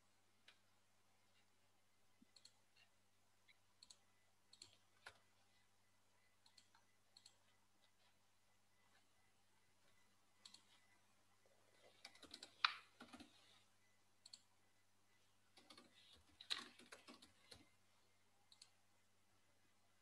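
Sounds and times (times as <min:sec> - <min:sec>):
low electrical hum: 0:00.0 - 0:20.0
computer keyboard typing: 0:11.9 - 0:13.4, 0:15.5 - 0:17.7.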